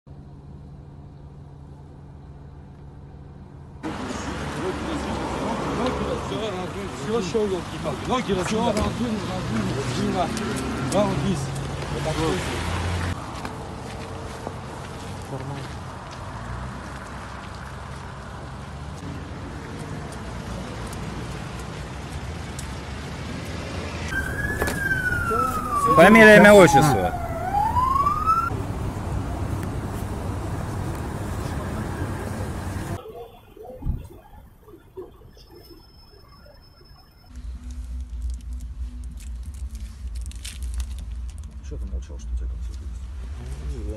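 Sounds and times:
car engine idling: 0:00.1 - 0:09.5, 0:24.1 - 0:33.0
low rumble of street noise: 0:00.1 - 0:43.9
siren wail: 0:24.0 - 0:30.5
raised voices: 0:24.2 - 0:35.8.

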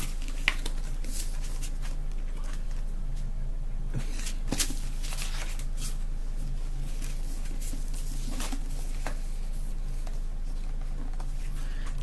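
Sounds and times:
book pages flipping: 0:00.0 - 0:02.9, 0:04.0 - 0:06.0, 0:06.8 - 0:12.0
low hum: 0:00.0 - 0:12.0.

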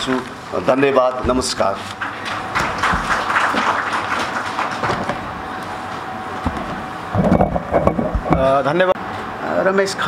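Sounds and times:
audience applauding: 0:02.0 - 0:05.3.

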